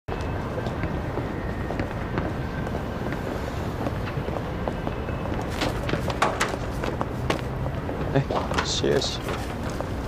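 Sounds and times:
city street rumble: 0:00.1 - 0:10.0.

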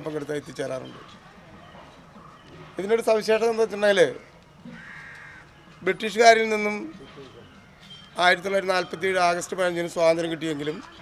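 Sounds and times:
faint raspy bird call: 0:04.6 - 0:05.5.

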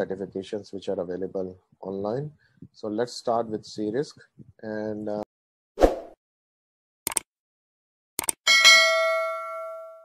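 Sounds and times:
bright notification bell: 0:08.5 - 0:10.0.

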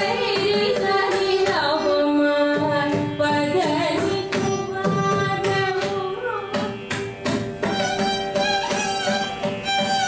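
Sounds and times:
violin melody: 0:00.0 - 0:10.0.

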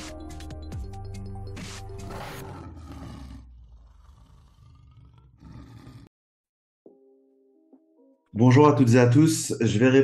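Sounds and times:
lion roar: 0:02.0 - 0:06.1.

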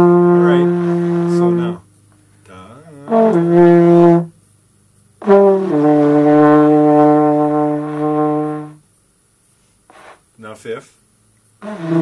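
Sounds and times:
trombone notes: 0:00.0 - 0:01.9, 0:02.6 - 0:04.4, 0:05.2 - 0:08.8, 0:11.6 - 0:12.0.

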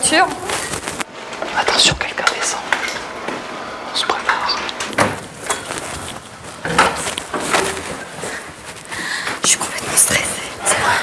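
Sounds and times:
hushed voices whispering: 0:03.9 - 0:04.8.

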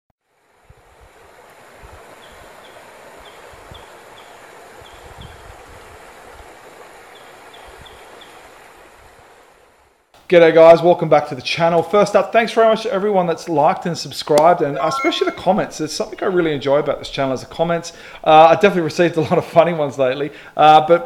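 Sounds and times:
faint high chirps: 0:14.8 - 0:15.7.

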